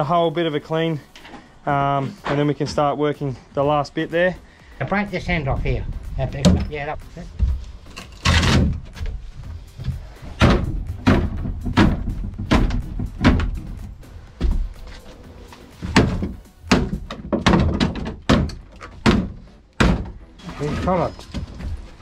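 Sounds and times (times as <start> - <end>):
wood cracking: 7.6 - 9.2, 9.9 - 14.0, 15.8 - 20.2
crowbar knocking on wood: 10.4 - 13.8, 16.0 - 20.2.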